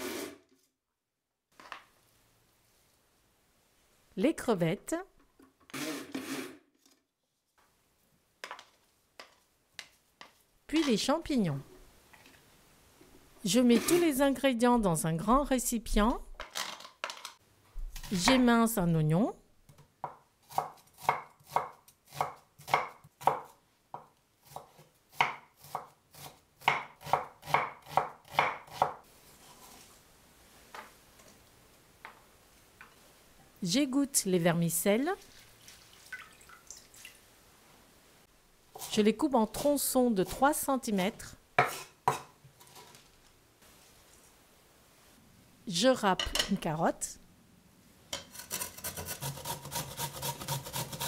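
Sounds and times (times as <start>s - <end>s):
knife slicing onion on wooden board: 20.0s - 23.5s, 24.4s - 29.0s, 41.6s - 42.7s, 48.2s - 51.0s.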